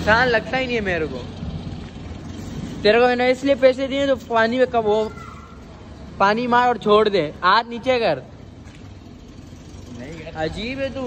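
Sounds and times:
road traffic rumble: 0.0s - 11.0s
man speaking: 2.8s - 5.2s, 6.2s - 8.3s, 9.9s - 11.0s.

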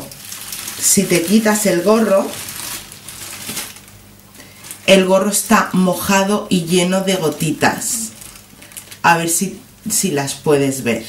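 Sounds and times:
plastic shower cap crinkling: 0.0s - 5.0s, 7.3s - 9.1s.

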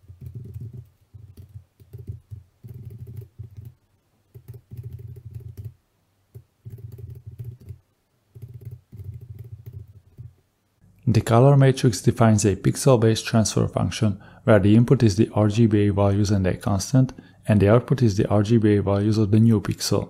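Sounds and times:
typing on computer keyboard: 0.0s - 10.3s.

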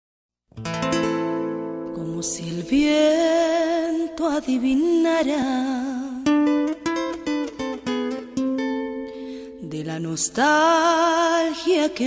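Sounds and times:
plucked guitar notes: 0.5s - 5.0s, 6.0s - 10.3s
person singing a ballad: 1.7s - 12.0s.

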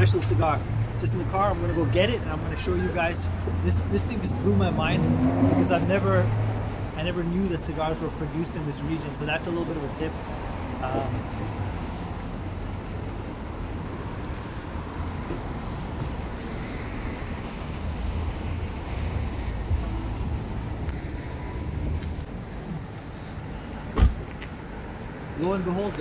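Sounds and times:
low rumble of street traffic: 0.0s - 26.0s
car door shutting: 23.9s - 24.4s.

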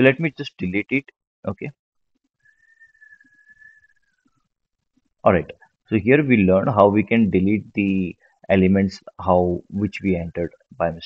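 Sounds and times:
faint high whistling tone: 2.4s - 4.5s.

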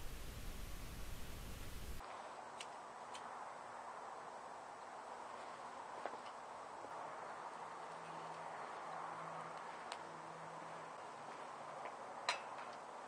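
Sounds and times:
stove fire rushing: 0.0s - 2.0s
fire crackling: 0.0s - 3.4s.

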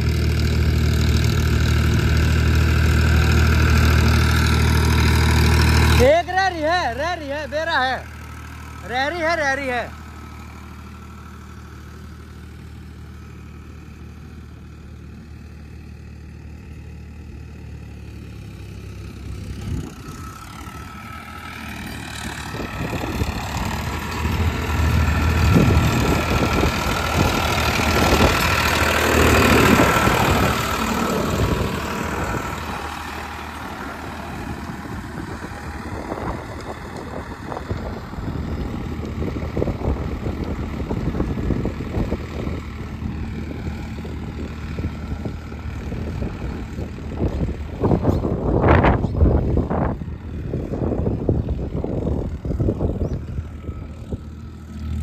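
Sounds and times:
tractor diesel engine running: 0.0s - 55.0s.

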